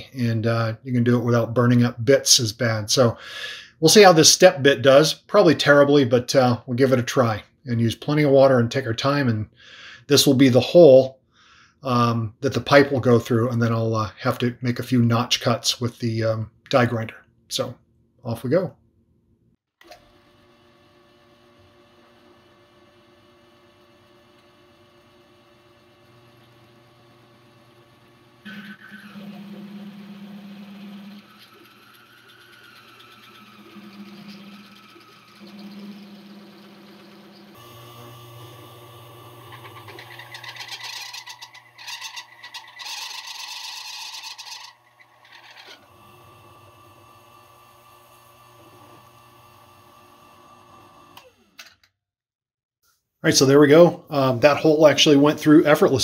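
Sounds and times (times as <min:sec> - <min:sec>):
drill press motor hum: 0:19.8 - 0:51.9
drill bit grinding metal: 0:19.9 - 0:51.7.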